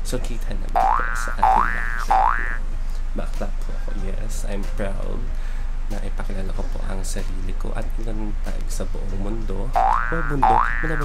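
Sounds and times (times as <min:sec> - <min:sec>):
man speaking: 0:00.0 - 0:02.2, 0:05.9 - 0:11.0
cartoon rising tone effect: 0:00.8 - 0:02.6, 0:09.8 - 0:11.0.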